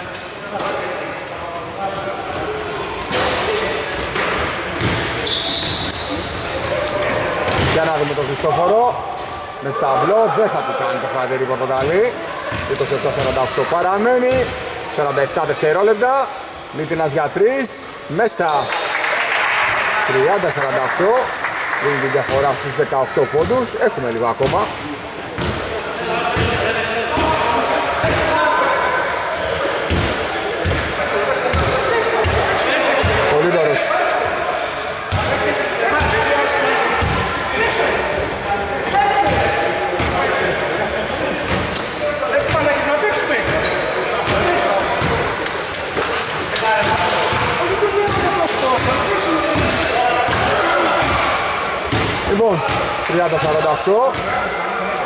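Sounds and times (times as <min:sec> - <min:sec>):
voices echoing in hall: 0:00.0 - 0:55.0.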